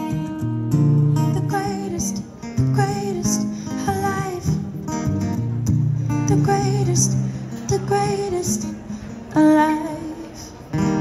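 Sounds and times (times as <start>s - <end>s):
acoustic guitar strumming: 0.0s - 11.0s
woman singing into a microphone: 1.2s - 5.3s, 6.1s - 10.6s.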